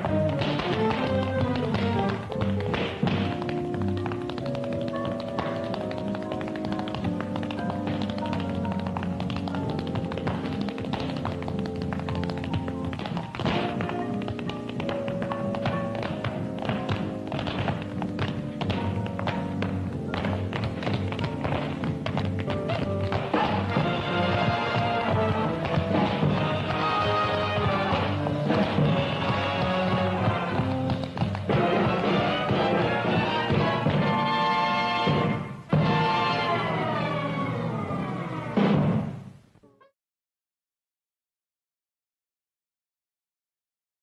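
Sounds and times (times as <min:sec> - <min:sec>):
tap shoes clicking: 0:00.0 - 0:34.3.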